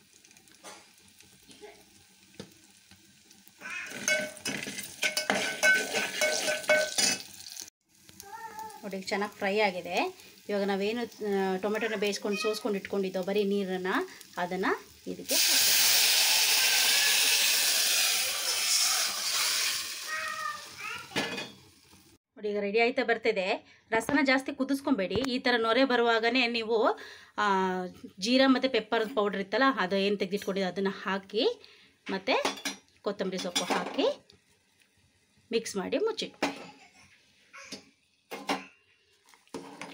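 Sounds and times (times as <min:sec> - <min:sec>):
hot oil sizzling in a pot: 0:00.0 - 0:22.2, 0:32.2 - 0:36.3, 0:37.3 - 0:39.9
metal utensil clinking on pot: 0:03.9 - 0:07.3.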